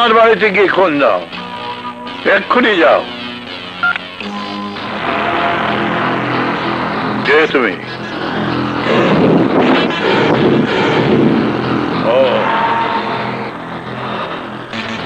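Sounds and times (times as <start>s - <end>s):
dramatic film score drone: 0.0s - 15.0s
wavering voice-like glide: 7.8s - 14.7s.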